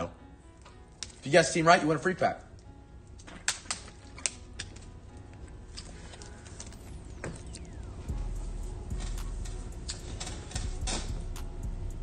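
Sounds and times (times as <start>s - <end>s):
low steady hum: 4.8s - 12.0s.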